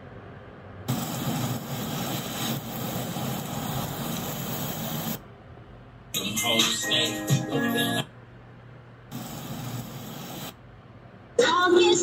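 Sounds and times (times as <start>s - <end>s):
loud rushing hiss: 0.9s - 5.2s, 9.1s - 10.6s.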